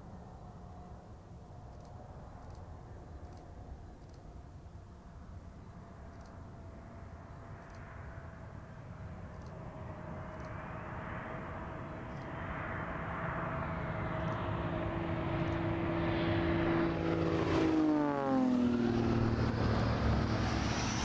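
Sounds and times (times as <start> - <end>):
aircraft whine and hum: 0.0 - 21.0.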